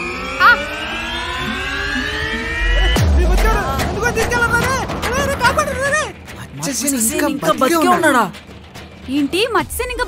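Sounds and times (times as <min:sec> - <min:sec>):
rising synthesized tone: 0:00.0 - 0:06.2
deep low boom: 0:02.2 - 0:06.6.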